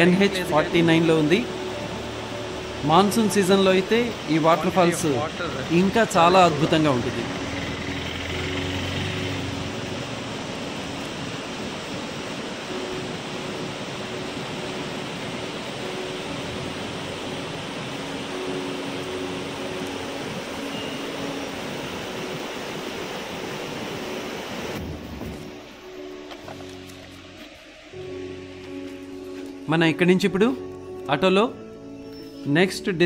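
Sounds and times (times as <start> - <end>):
stream rushing over rocks: 0.0 - 29.6.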